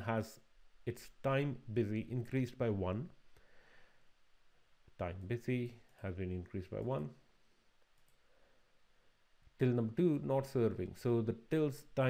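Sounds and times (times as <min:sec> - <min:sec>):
faint mouse clicks: 0:07.8 - 0:08.3.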